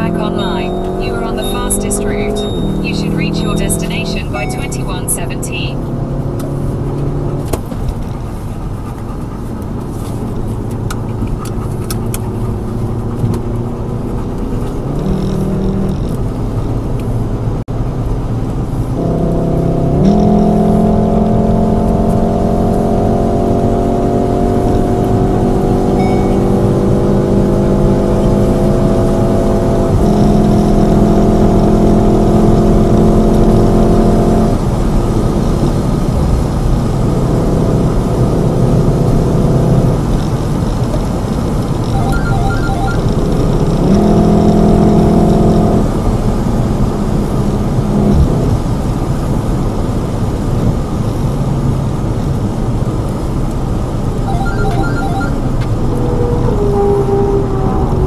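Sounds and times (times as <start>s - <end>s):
car engine accelerating: 0.0s - 58.0s
tyre and road noise: 0.0s - 58.0s.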